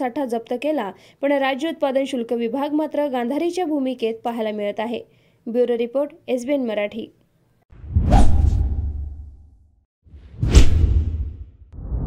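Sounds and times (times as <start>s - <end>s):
whoosh transition effects: 7.8s - 9.4s.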